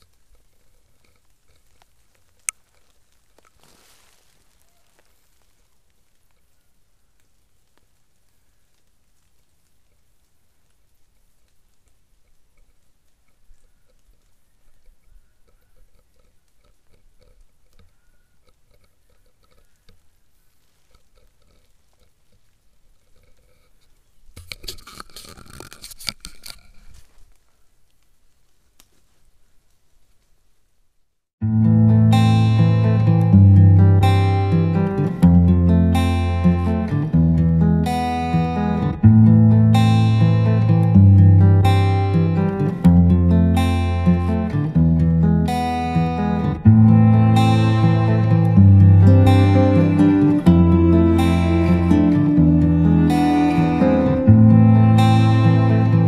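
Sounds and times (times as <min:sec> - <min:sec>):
acoustic guitar strumming chords: 0:31.4 - 0:56.0.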